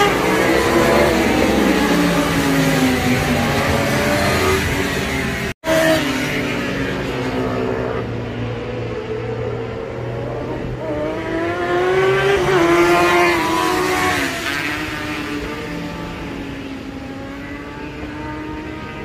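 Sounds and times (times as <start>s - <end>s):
motorcycle passing by: 9.9s - 16.2s.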